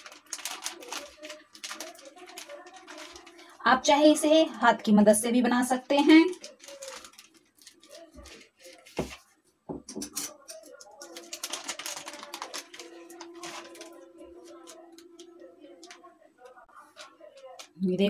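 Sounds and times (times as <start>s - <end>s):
plastic sheet rustling: 0.0s - 4.5s, 5.7s - 9.3s, 10.3s - 17.8s
faint background voices: 0.0s - 18.0s.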